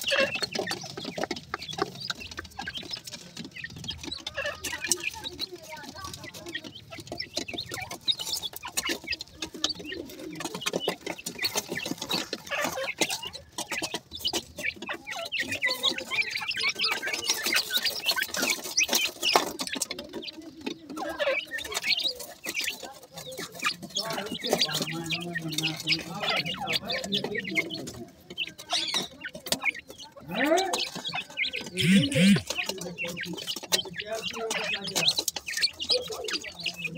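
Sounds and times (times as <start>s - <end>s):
pecking and scratching at sand: 0.0s - 36.9s
young birds cheeping and chirping: 0.0s - 36.9s.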